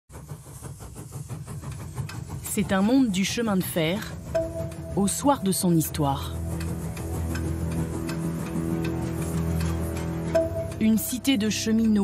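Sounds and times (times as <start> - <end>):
train rumbling and clattering on rails: 0.1 - 12.0.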